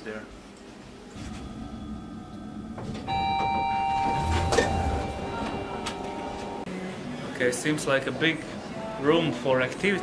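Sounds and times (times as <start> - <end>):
low hum: 1.1 - 7.2
elevator arrival chime: 1.2 - 6.7.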